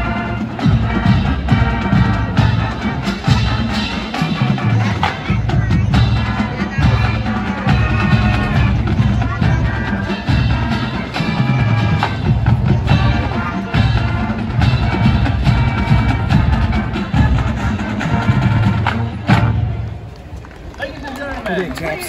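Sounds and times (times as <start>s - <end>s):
bass drum: 0.0s - 19.8s
marching band playing brass chords: 0.0s - 20.4s
percussion: 0.0s - 22.0s.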